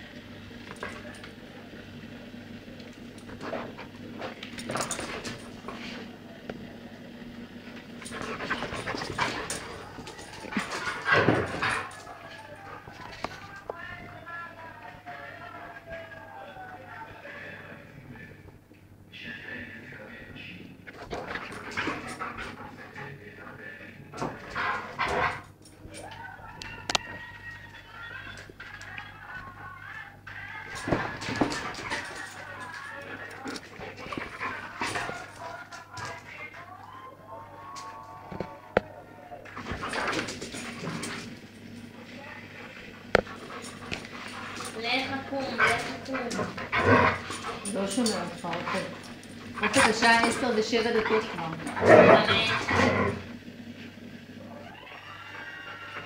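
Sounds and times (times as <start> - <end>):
dogs scuffling: 3.2 - 6.2, 7.6 - 16.2, 20.8 - 29.6, 30.3 - 36.7, 39.5 - 53.9
dog panting: 8.0 - 13.5, 21.0 - 25.5, 31.0 - 36.3, 42.4 - 53.1
dog whining: 54.5 - 56.0.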